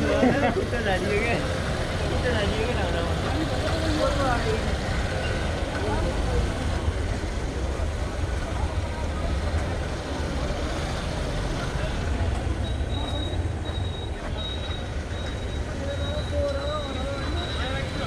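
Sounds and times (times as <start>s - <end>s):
motorcycles running: 0.0s - 18.0s
voices in background: 0.0s - 18.0s.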